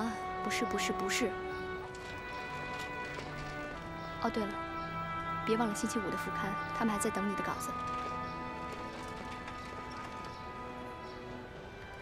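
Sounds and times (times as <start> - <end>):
sustained soundtrack music: 0.0 - 12.0.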